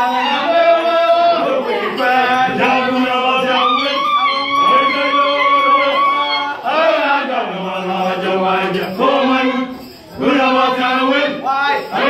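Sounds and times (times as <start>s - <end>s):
group chanting in unison: 0.0s - 12.0s.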